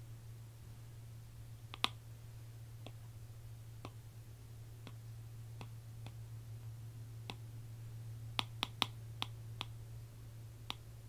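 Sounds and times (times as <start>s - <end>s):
steady low hum: 0.0s - 11.0s
small sharp clicks: 1.7s - 2.0s, 10.6s - 10.9s.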